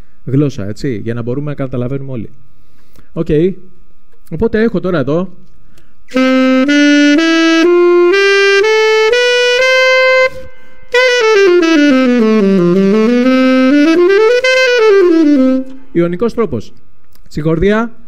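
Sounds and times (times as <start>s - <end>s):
alto saxophone playing scale: 6.1s - 15.9s.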